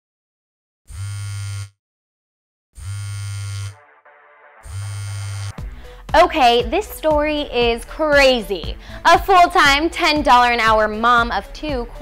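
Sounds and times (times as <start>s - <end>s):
phone vibrating on table: 0.9s - 1.8s, 2.8s - 3.8s, 4.6s - 5.6s.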